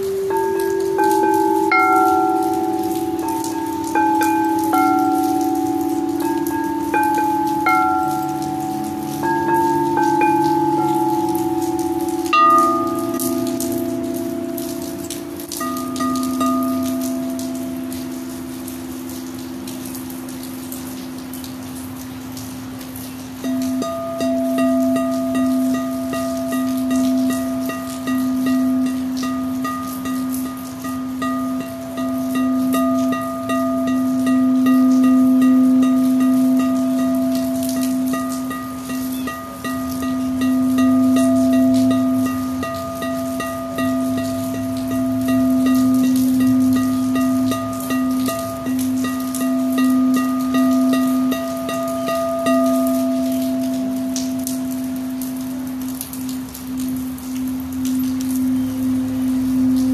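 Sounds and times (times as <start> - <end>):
singing bowl higher overtones: 0.0 - 20.2, 23.4 - 59.9
singing bowl low ringing tone: 0.0 - 21.5, 23.4 - 59.9.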